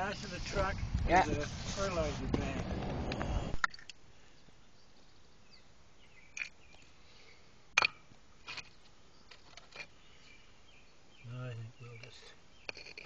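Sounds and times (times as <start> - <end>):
faint bird chirps: 4.2 - 7.5, 8.6 - 13.0
clay tiles knocking and scraping: 12.6 - 13.0.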